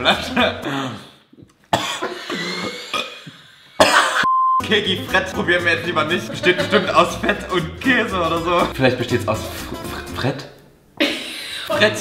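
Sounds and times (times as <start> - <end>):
man coughing: 0.3 - 4.3
voiced throat noise: 0.6 - 4.3.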